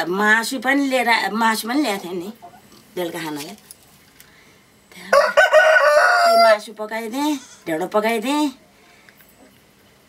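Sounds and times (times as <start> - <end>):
rooster crowing: 5.1 - 6.7.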